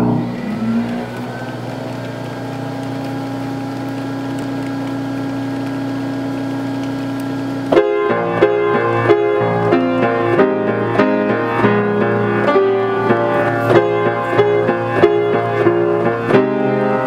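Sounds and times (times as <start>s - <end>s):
piano playing chords: 0.0s - 17.0s
player piano mechanism drone and hiss: 0.0s - 17.0s.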